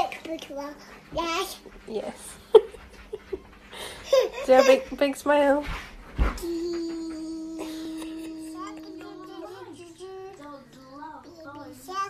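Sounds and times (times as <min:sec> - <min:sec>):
young child singing: 0:06.4 - 0:12.0.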